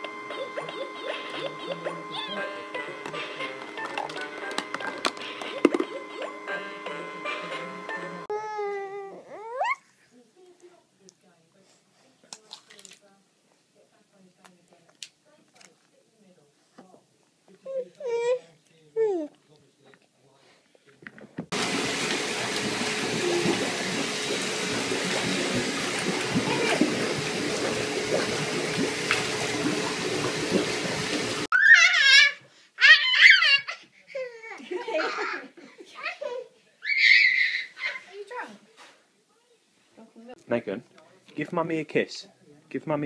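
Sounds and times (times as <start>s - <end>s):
baby squealing: 8.3s - 9.8s, 31.5s - 34.4s, 36.8s - 38.0s
water rushing in bathtub: 21.5s - 31.5s.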